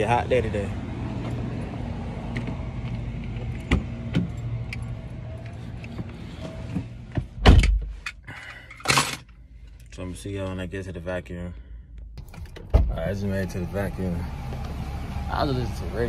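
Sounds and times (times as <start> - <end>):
car door shutting: 12.2 - 13.2.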